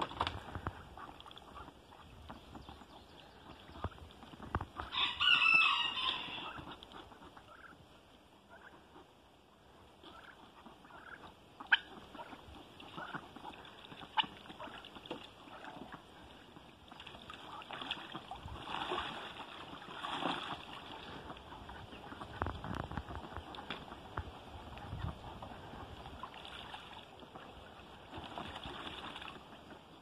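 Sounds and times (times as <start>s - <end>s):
faint fowl calls: 0.2s - 28.5s
chicken calling: 4.8s - 6.8s.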